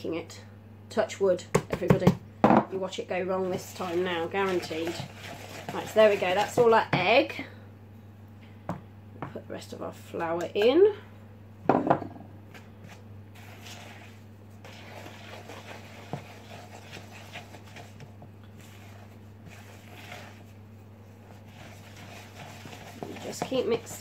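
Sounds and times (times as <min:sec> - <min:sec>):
spatula scraping batter in bowl: 0:03.4 - 0:06.8, 0:12.8 - 0:24.0.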